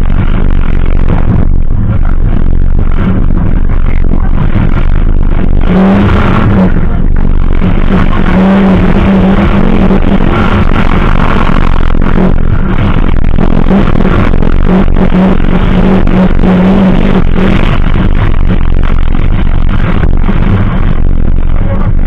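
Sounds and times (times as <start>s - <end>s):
rally car engine at high revs: 0.0s - 22.0s.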